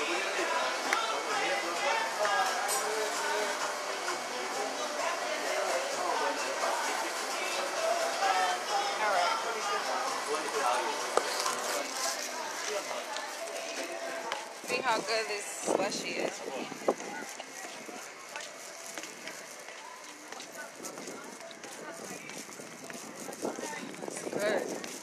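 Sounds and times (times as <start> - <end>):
people talking in background: 0.0 - 25.0.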